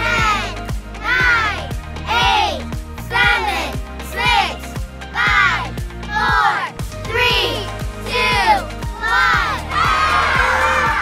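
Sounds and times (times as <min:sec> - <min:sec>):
children shouting and cheering: 0:00.0 - 0:11.0
upbeat music with steady beat: 0:00.0 - 0:11.0.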